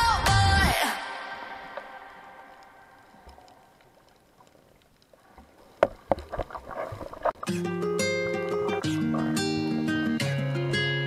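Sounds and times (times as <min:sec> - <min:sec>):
rough underwater noise: 0:00.6 - 0:09.9.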